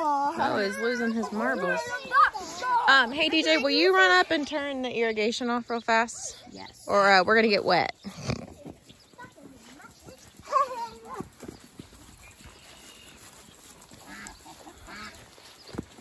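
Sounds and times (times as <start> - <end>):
faint scattered outdoor sounds: 0.0 - 16.0
farm animal calling: 5.4 - 16.0.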